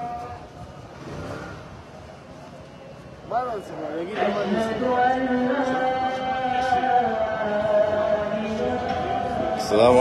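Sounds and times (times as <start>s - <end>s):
call to prayer over loudspeaker: 3.8s - 10.0s.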